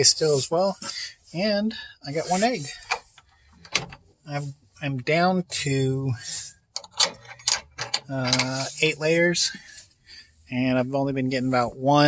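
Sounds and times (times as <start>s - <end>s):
person speaking: 0.0s - 3.0s, 8.0s - 9.5s.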